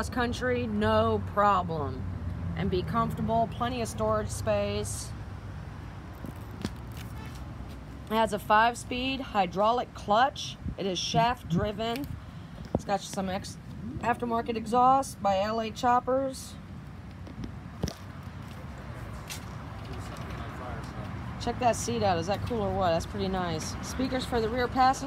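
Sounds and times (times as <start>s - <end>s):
low outdoor rumble: 7.8s - 25.0s.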